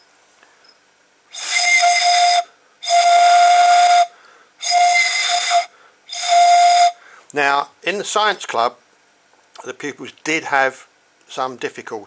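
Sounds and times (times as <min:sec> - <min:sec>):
breathy straw whistling notes: 0:00.6 - 0:07.2.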